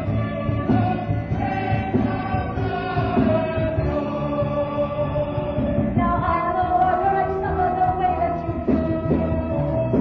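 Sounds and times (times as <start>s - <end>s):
chorus singing in unison: 0.0s - 10.0s.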